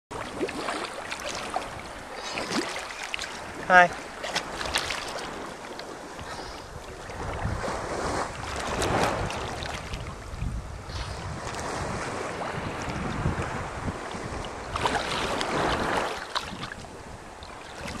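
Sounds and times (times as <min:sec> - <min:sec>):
seawater splashing and sloshing: 0:00.1 - 0:18.0
wind buffeting microphone: 0:03.4 - 0:18.0.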